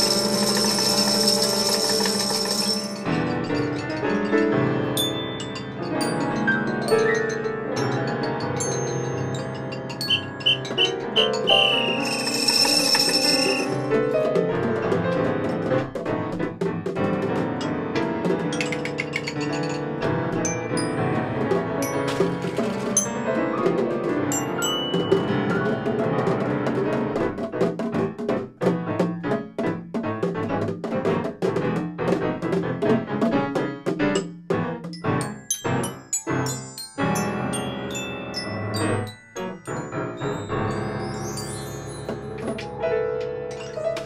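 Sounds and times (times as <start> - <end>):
high ringing metallic tone: 0.0 - 3.8, 10.0 - 13.9
struck mallet percussion: 0.0 - 14.5, 18.3 - 25.9, 34.0 - 42.8
piano notes: 0.0 - 44.0.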